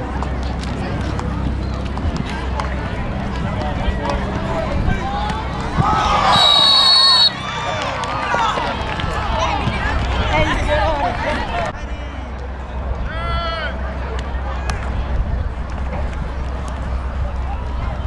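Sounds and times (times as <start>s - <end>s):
shouting voices: 5.0s - 9.6s
referee's whistle blast: 6.3s - 7.4s.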